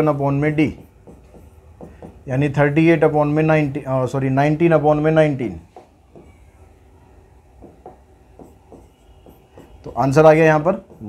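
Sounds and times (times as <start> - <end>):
pen scratching on whiteboard screen: 0.4 - 2.2, 7.6 - 11.0.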